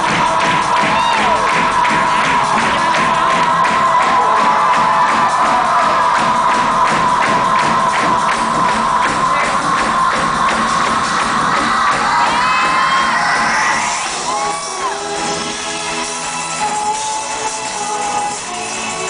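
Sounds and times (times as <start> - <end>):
crowd cheering and whooping: 0.0 - 19.0.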